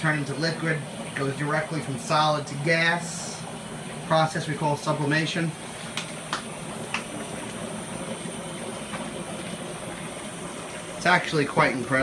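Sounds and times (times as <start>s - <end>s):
dry ice bubbling: 0.0s - 12.0s
faucet running water: 0.0s - 12.0s.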